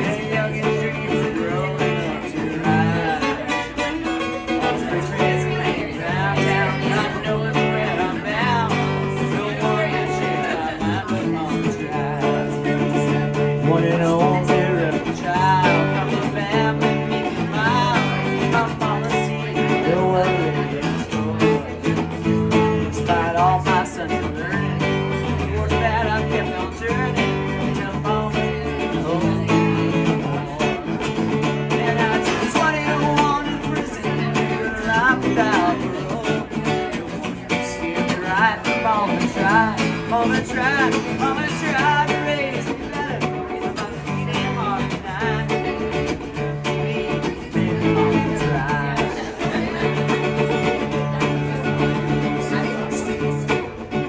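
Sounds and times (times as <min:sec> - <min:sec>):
acoustic guitar strumming: 0:00.0 - 0:54.0
person singing: 0:00.0 - 0:54.0.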